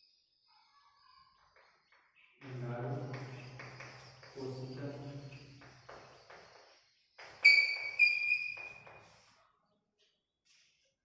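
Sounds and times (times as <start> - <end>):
high-pitched chalk squeaks: 2.4 - 9.4
chalk scratching on blackboard: 2.5 - 9.4.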